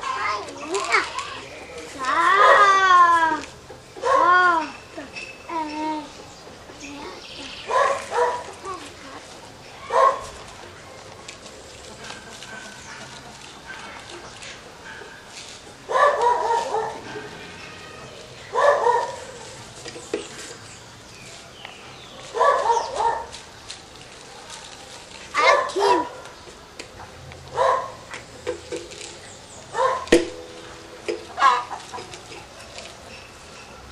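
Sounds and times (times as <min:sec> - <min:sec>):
dog barking: 0:04.0 - 0:04.4, 0:07.7 - 0:08.5, 0:09.8 - 0:10.3, 0:15.9 - 0:17.3, 0:18.5 - 0:19.2, 0:22.3 - 0:23.3, 0:25.4 - 0:26.3, 0:27.5 - 0:28.0, 0:29.7 - 0:30.1.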